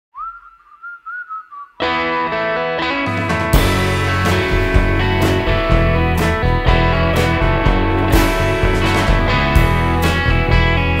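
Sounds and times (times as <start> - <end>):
whistled melody: 0.1 - 2.3
rock band with distorted guitar: 1.8 - 11.0.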